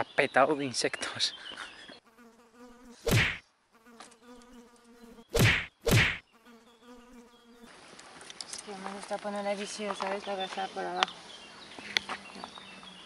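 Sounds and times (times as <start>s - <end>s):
flying insect buzzing: 2.0s - 7.8s
loud short thumps: 3.1s - 3.4s, 5.4s - 6.2s.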